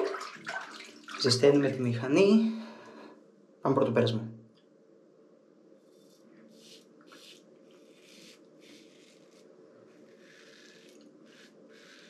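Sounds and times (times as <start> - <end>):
razor scratching stubble: 6.0 - 12.0.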